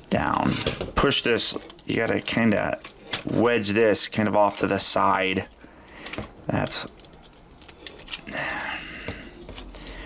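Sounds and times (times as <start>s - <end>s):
plastic parts rustling: 0.2s - 10.0s.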